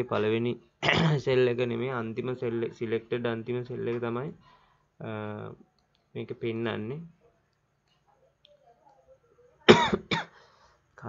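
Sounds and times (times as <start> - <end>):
person coughing: 0.8 - 1.2, 9.7 - 10.4.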